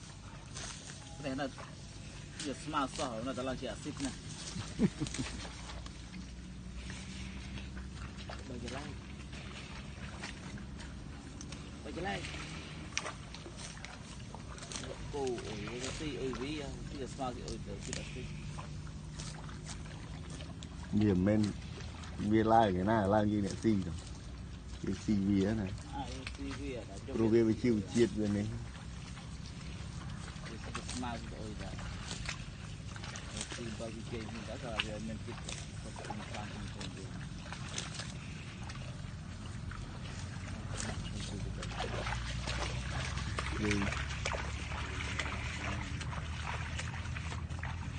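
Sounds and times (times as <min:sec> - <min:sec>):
crackling and splashing in water: 0:00.0 - 0:47.9
steady low hum: 0:00.0 - 0:47.9
steady low rumble: 0:00.0 - 0:47.9.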